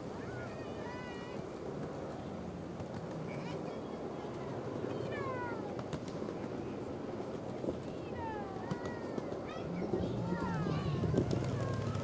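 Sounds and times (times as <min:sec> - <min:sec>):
miniature train rumbling on track: 0:00.0 - 0:12.0.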